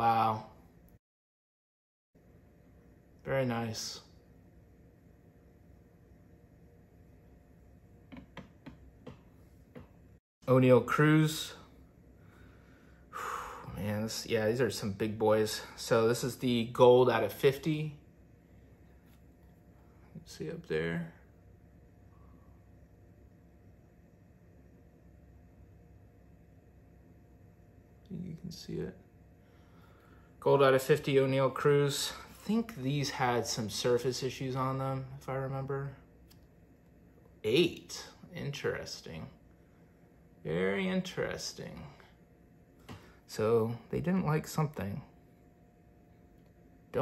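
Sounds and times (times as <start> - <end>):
faint steady hiss and hum: 2.2 - 47.0.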